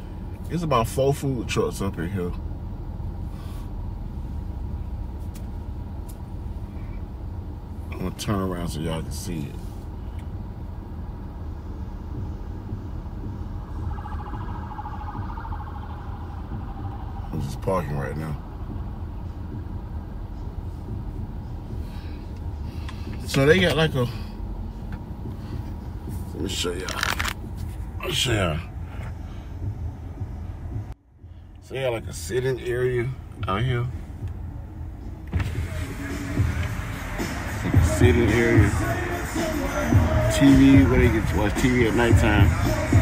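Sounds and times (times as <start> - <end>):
car engine and tyres rumbling: 0.0 - 43.0.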